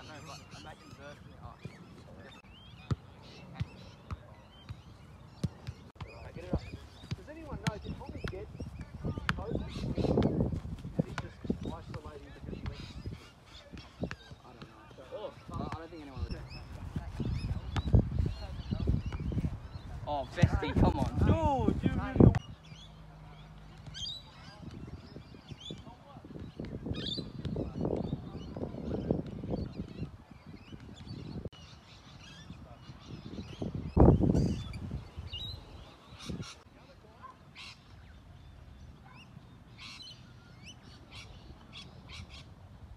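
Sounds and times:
birds chirping: 0:00.0 - 0:42.9.

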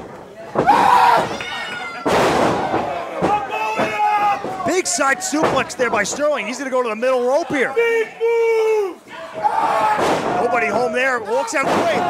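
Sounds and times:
people shouting: 0:00.6 - 0:06.2, 0:07.5 - 0:12.0.

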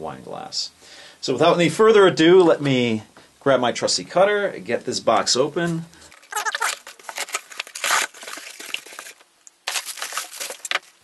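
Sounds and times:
plastic packing crinkling: 0:06.0 - 0:11.0
cardboard flaps opening: 0:06.1 - 0:11.0
box cutter slitting packing tape: 0:06.2 - 0:10.9.

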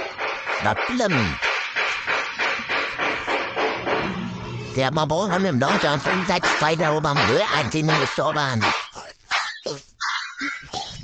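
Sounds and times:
dog barking: 0:07.9 - 0:10.7.

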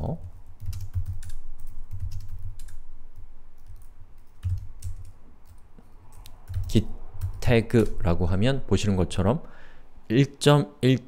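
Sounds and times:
keyboard typing: 0:00.0 - 0:08.0.

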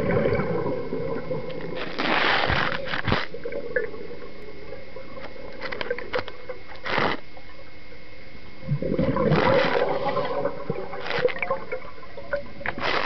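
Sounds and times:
rush of air and bubbles: 0:00.0 - 0:06.1, 0:08.6 - 0:13.0.

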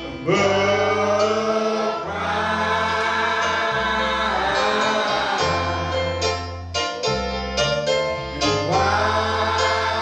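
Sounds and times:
group of voices singing: 0:00.0 - 0:06.5, 0:08.2 - 0:10.0
sustained keyboard chords: 0:00.0 - 0:10.0
man singing into a microphone: 0:00.1 - 0:06.0.

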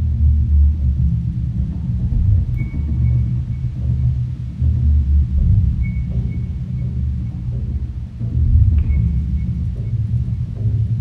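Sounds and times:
double bass low notes: 0:00.0 - 0:11.0.

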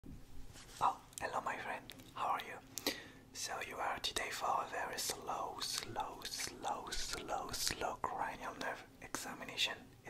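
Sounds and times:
man whispering: 0:00.8 - 0:10.0.

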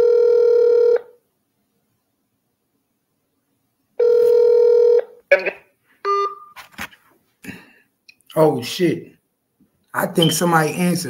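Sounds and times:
telephone ringback tone: 0:00.0 - 0:01.2, 0:04.0 - 0:06.6.

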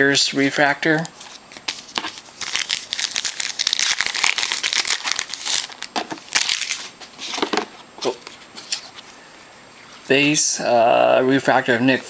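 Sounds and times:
wrapper crinkling and tearing: 0:01.0 - 0:07.4.

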